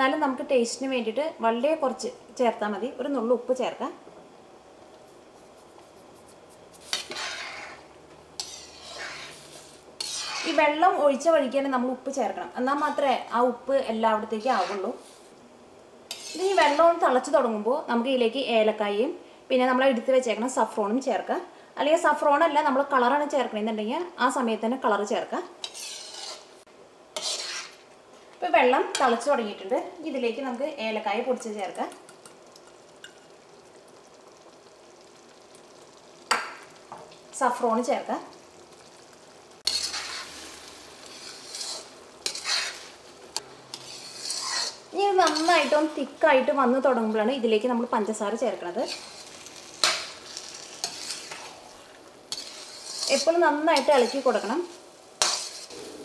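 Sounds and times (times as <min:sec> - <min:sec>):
mixture simmering in pan: 0:01.7 - 0:18.5, 0:23.3 - 0:56.0
metal spoon scraping pan: 0:06.7 - 0:10.8, 0:14.3 - 0:15.3, 0:16.1 - 0:17.2, 0:25.6 - 0:26.6, 0:27.2 - 0:27.9, 0:39.6 - 0:46.6, 0:48.6 - 0:56.0.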